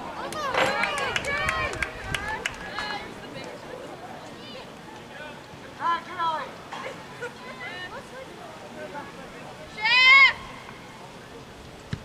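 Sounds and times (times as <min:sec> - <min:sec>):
outdoor soccer match background: 0:00.0 - 0:08.0
woman shouting: 0:09.7 - 0:10.5.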